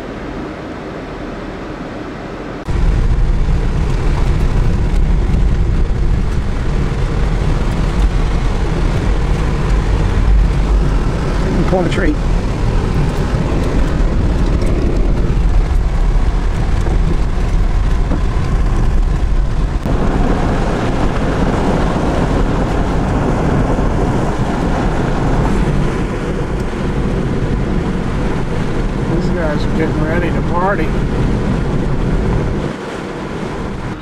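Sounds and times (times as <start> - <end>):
vehicle road and engine rumble: 0.0 - 34.0.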